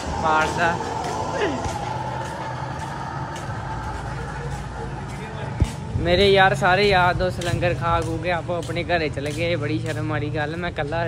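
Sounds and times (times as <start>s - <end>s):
vehicle engine running: 0.0s - 8.1s
street noise: 0.0s - 11.0s.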